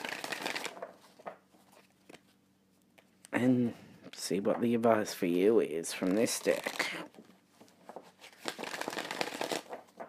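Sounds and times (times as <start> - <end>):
cards and fabric rustling: 0.0 - 2.4, 6.0 - 10.0.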